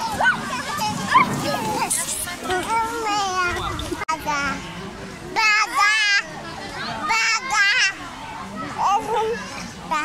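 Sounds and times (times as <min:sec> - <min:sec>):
soft children's voices: 0:00.0 - 0:10.0.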